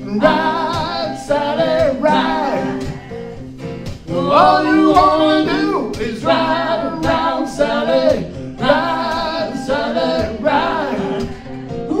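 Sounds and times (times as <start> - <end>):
man and woman singing in harmony: 0.0 - 12.0
strummed acoustic guitars: 0.0 - 12.0.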